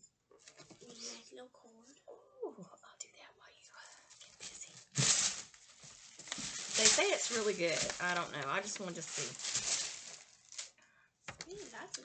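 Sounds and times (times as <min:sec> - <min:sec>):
soft murmured speech: 0:00.8 - 0:04.9
wrapping rustling: 0:03.9 - 0:12.0.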